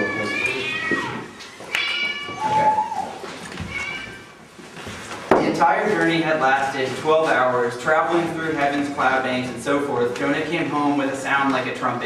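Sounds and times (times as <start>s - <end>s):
high-pitched meow-like calls: 0.0s - 4.4s.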